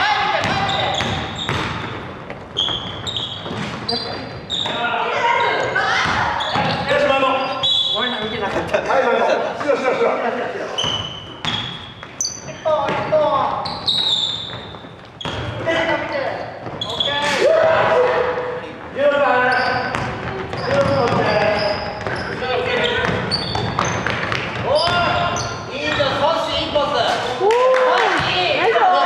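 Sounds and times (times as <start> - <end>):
sneakers squeaking: 0.0 - 8.8, 10.7 - 27.3
basketball bouncing on wooden floor: 0.4 - 4.8, 5.9 - 6.9, 12.8 - 13.2, 19.8 - 26.2.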